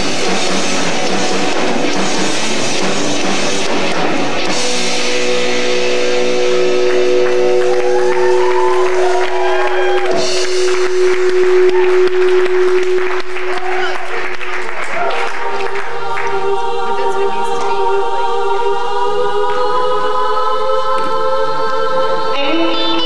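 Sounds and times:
live rock band music: 0:00.0 - 0:14.5.

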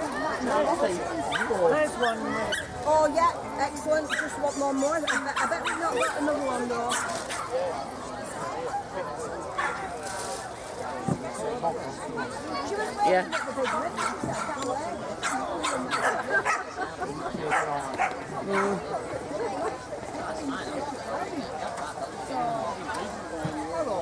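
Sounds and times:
dogs barking: 0:13.3 - 0:14.6, 0:15.2 - 0:16.8, 0:17.5 - 0:18.8.

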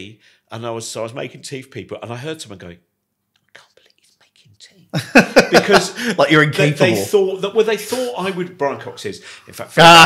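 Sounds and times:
man whispering: 0:03.4 - 0:04.9, 0:06.7 - 0:07.1
laughter: 0:05.0 - 0:06.1
loud voice: 0:06.6 - 0:07.2.

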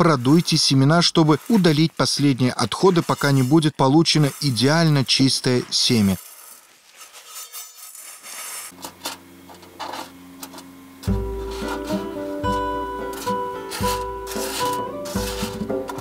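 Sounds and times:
seeds rattling in metal dish: 0:04.2 - 0:09.2, 0:11.5 - 0:16.0
background music: 0:11.1 - 0:16.0.

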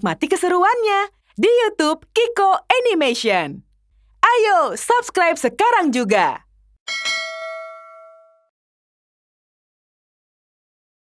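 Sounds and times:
bell chime ringing: 0:06.9 - 0:08.5.

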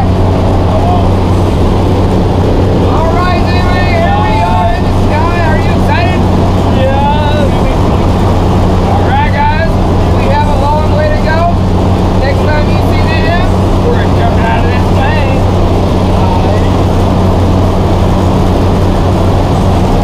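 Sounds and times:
people talking: 0:00.0 - 0:02.1, 0:02.7 - 0:17.0
plane engine and propeller drone: 0:00.0 - 0:20.0.

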